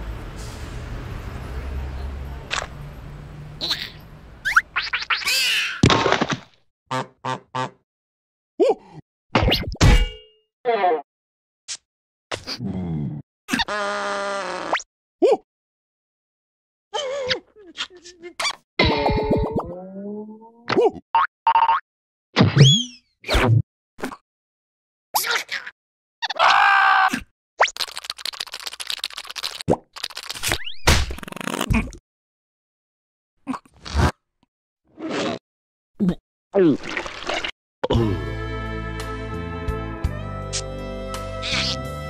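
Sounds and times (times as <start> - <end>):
comic vocal squeaks and blips: 17.8 - 21.8, 22.4 - 23.6, 27.6 - 32.0
music: 37.9 - 42.0.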